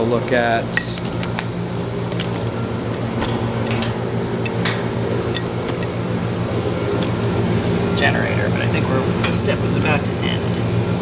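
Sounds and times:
machine hum with hiss: 0:00.0 - 0:11.0.

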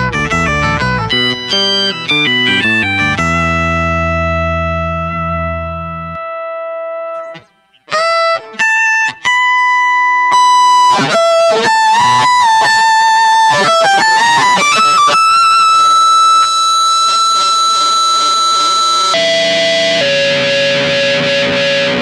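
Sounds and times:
fuzz electric guitar: 0:00.0 - 0:22.0.

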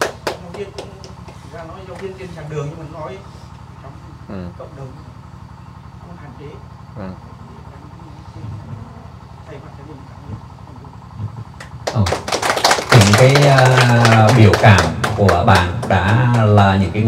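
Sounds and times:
people applauding: 0:00.0 - 0:01.5, 0:11.6 - 0:17.0.

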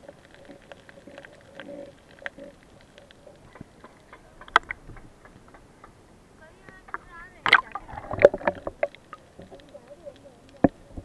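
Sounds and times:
underwater clicks and knocks: 0:00.0 - 0:06.0, 0:06.7 - 0:11.0.

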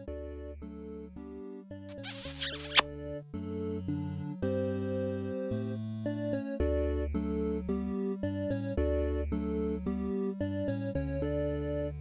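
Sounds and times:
short hissing noise: 0:02.0 - 0:02.8.

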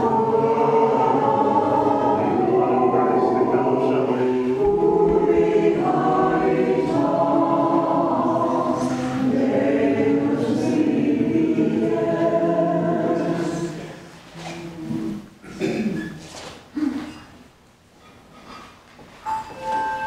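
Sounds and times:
congregation singing a hymn: 0:00.0 - 0:14.2.

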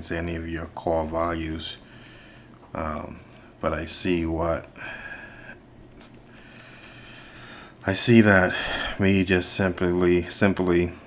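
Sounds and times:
stylus scratching on tablet: 0:00.0 - 0:02.4, 0:03.8 - 0:07.3.

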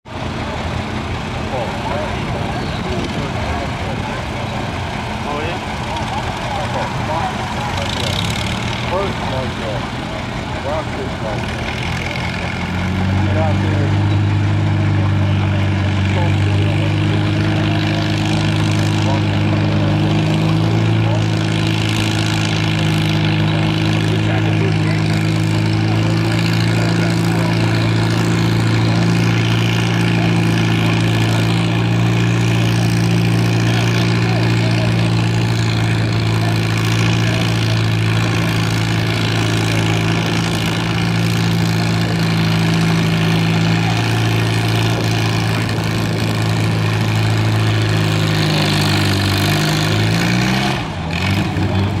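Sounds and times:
tractor engine under heavy load: 0:00.0 - 0:52.0.

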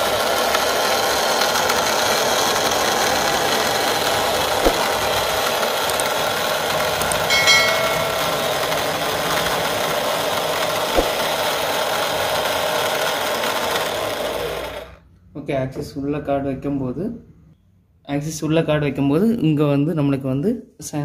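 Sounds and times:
small gear motor running: 0:00.0 - 0:15.0.

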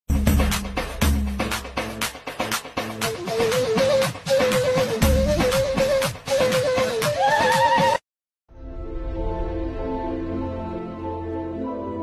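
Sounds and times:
dance music beat: 0:00.1 - 0:08.0.

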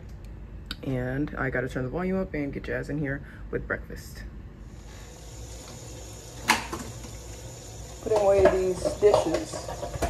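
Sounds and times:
faucet running into metal sink: 0:04.9 - 0:10.0.

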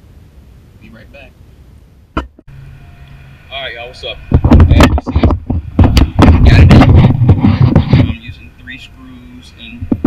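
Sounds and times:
distorted rumbling: 0:02.0 - 0:10.0
thumps on camera microphone: 0:04.3 - 0:08.3, 0:09.8 - 0:10.0.

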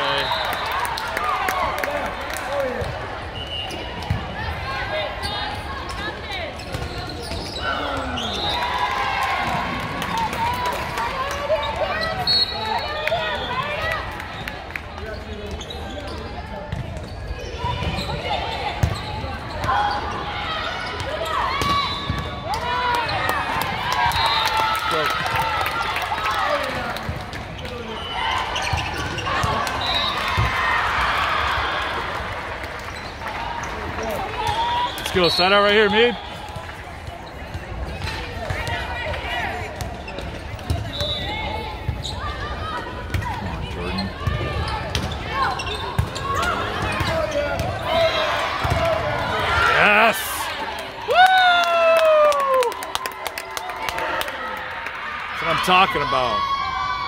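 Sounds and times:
spectators talking: 0:33.6 - 0:50.9.

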